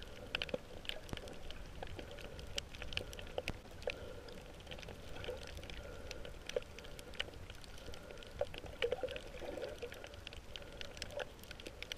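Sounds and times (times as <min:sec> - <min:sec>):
faint steady hum: 0:00.0 - 0:11.9
sharp clicks and crackles: 0:00.0 - 0:11.9
underwater water movement: 0:00.0 - 0:11.9.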